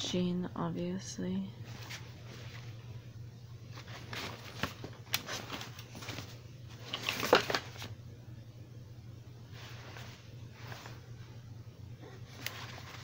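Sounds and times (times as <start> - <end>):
steady low hum: 0.0 - 13.0
fabric rustling: 1.6 - 2.9, 3.6 - 7.9, 9.5 - 11.3, 12.2 - 13.0.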